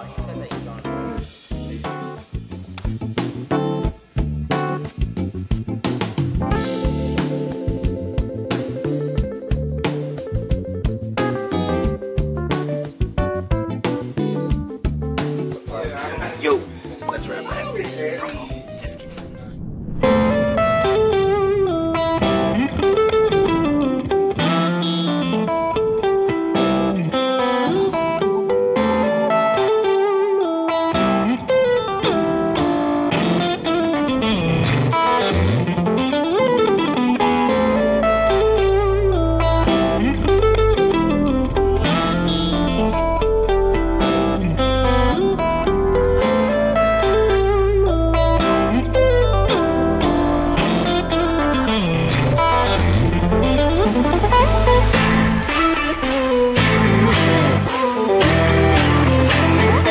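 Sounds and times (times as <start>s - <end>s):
electric guitar lead: 6.1s - 59.9s
deep bass notes: 39.0s - 59.9s.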